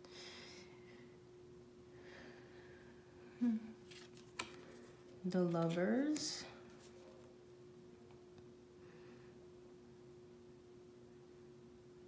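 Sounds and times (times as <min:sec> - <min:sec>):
person humming: 0:03.3 - 0:03.8
cards sliding: 0:03.8 - 0:07.1.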